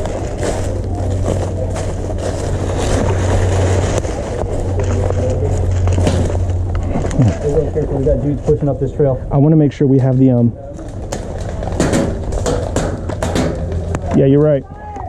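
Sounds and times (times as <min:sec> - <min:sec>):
brush rustling: 0:00.0 - 0:08.7
footsteps crunching on dry leaves: 0:00.0 - 0:08.8
steady low hum: 0:00.0 - 0:14.9.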